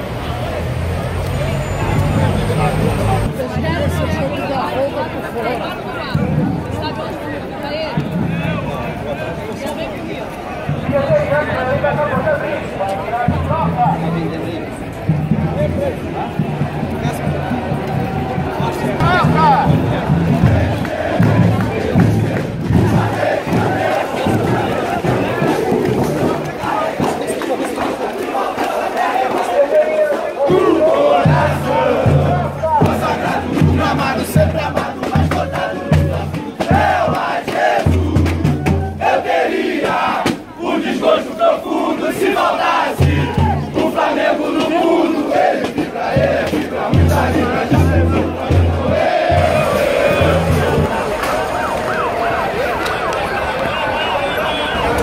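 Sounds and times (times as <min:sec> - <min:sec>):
crowd chanting and singing: 0:00.0 - 0:55.0
drum beating a steady rhythm: 0:06.0 - 0:07.2, 0:13.2 - 0:29.5, 0:30.1 - 0:41.2, 0:41.8 - 0:52.4.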